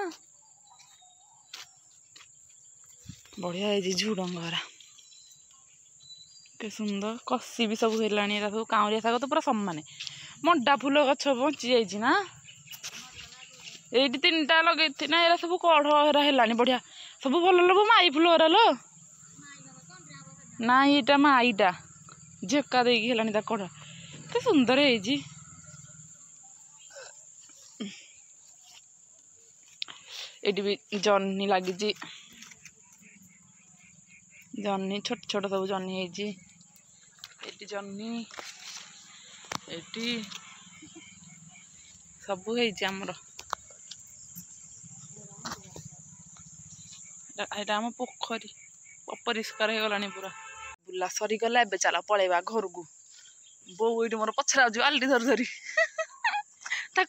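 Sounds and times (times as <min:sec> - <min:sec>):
crickets trilling: 0:00.0 - 0:57.0.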